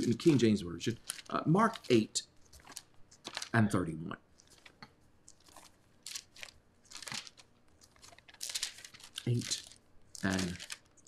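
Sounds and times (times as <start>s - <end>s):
thin pages turning: 0.0s - 3.6s, 4.3s - 11.0s.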